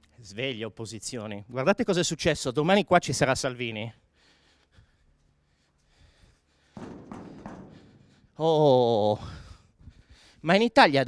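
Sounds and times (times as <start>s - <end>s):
hand banging steel panel: 6.7s - 8.3s.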